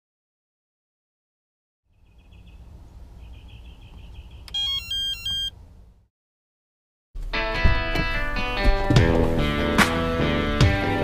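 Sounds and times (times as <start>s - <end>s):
phone ringtone beeps: 4.5s - 5.6s.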